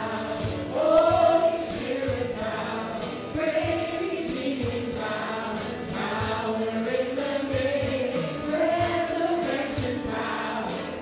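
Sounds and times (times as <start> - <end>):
acoustic guitars: 0.0 - 11.0
drum kit beat: 0.0 - 11.0
voices singing together: 0.0 - 11.0.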